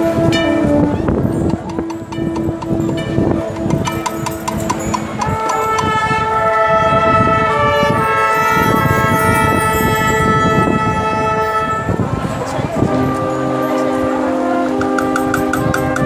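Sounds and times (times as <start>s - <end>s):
marching band brass playing: 0.0s - 16.0s.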